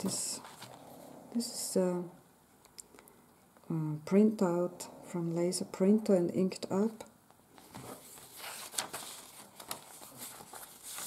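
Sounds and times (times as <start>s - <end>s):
paper rustling and sliding: 7.6s - 11.0s.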